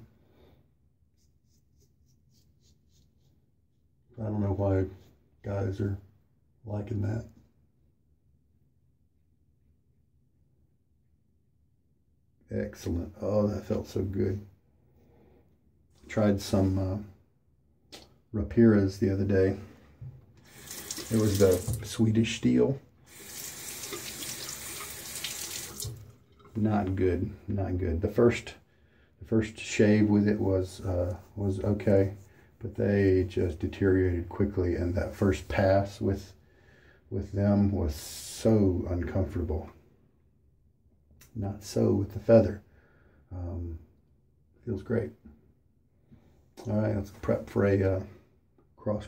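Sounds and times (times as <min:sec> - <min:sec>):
tap water splashing into sink: 0:20.4 - 0:22.0, 0:23.2 - 0:26.6.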